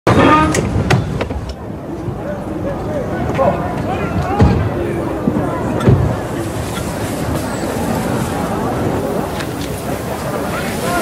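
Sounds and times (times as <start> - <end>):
street background noise: 0.1 - 11.0.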